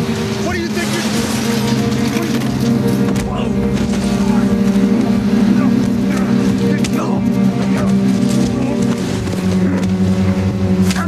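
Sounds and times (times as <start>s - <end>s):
wood chipper engine droning: 0.0s - 11.0s.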